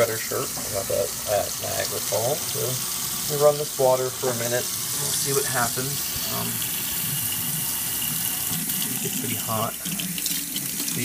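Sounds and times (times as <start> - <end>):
faucet running into sink: 0.0 - 11.0.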